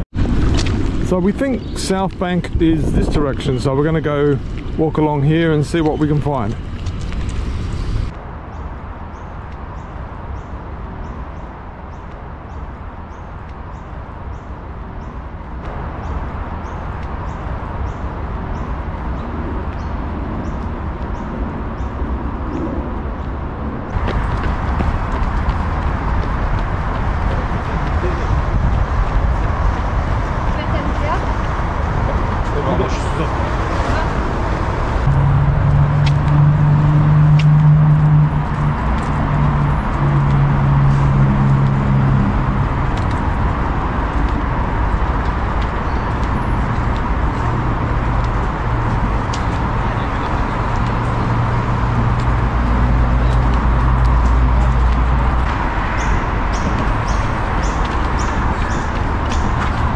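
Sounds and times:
steady rumble: 0:15.6 - 0:59.9
passers-by talking: 0:27.0 - 0:35.0
steady low hum: 0:34.2 - 0:43.0.

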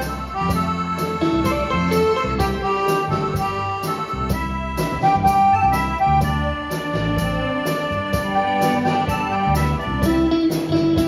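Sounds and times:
keyboard melody: 0:00.0 - 0:11.0
live band playing: 0:00.0 - 0:11.0.

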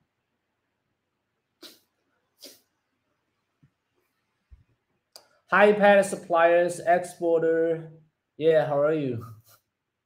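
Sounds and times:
man puffing breath through nose: 0:01.6 - 0:02.7.

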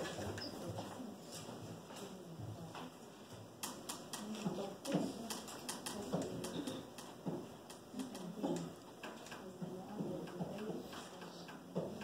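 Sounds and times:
faint murmured voices: 0:00.0 - 0:12.0
light sharp clicks and taps: 0:02.0 - 0:12.0.

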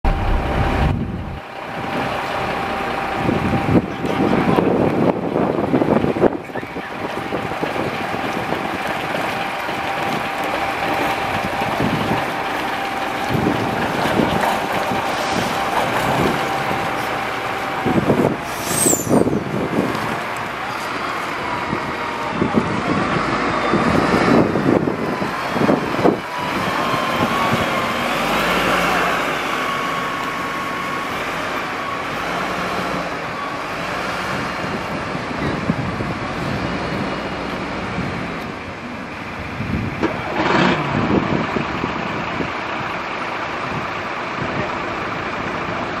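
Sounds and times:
diesel bus engine pulling away: 0:00.0 - 0:46.0
other bus engines running: 0:00.0 - 0:46.0.

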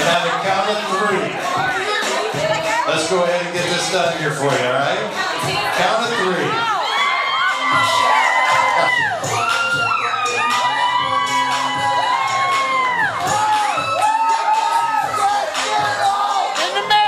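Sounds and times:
music playing: 0:00.0 - 0:17.0
women shrieking and cheering: 0:05.1 - 0:17.0.

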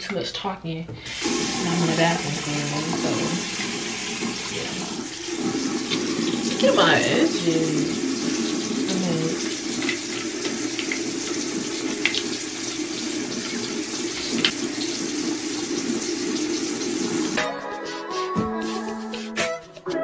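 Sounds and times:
tap running into sink: 0:00.9 - 0:17.4
music: 0:17.3 - 0:20.0.

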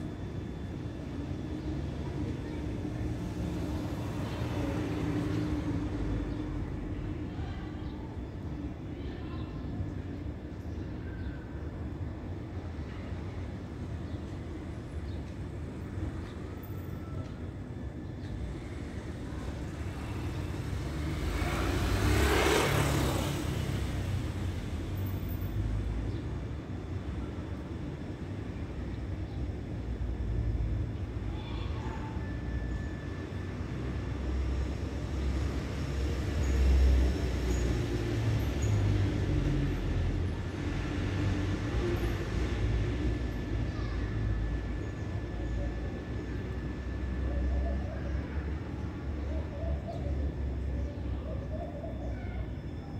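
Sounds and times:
low traffic rumble: 0:00.0 - 0:52.9
vehicle passing: 0:20.0 - 0:25.0.

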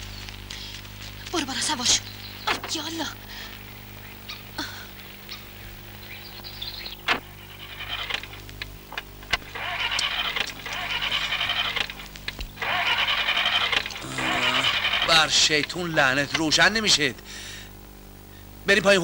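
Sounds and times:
car starter motor cranking: 0:07.0 - 0:16.5
sharp clicks: 0:07.9 - 0:14.0.

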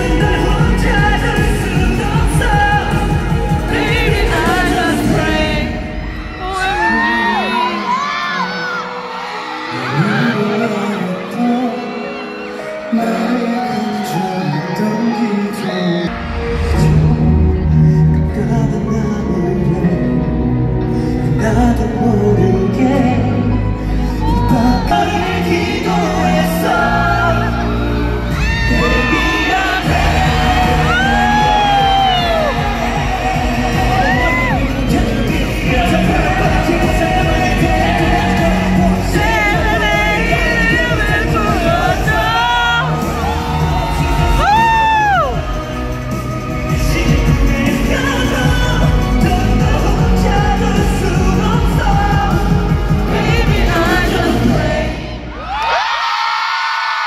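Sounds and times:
men singing: 0:00.0 - 0:09.1, 0:21.2 - 0:55.3
fans screaming and whooping: 0:00.0 - 0:18.4, 0:23.0 - 0:57.0
crowd yelling and cheering: 0:00.0 - 0:57.0
pop song over sound system: 0:00.0 - 0:57.0.

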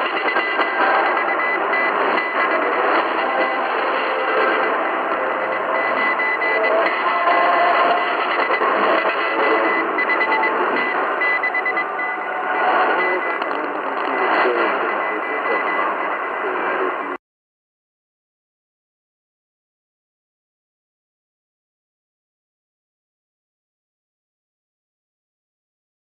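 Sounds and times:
morse code tone: 0:00.0 - 0:17.2
radio noise and interference: 0:00.0 - 0:17.2.

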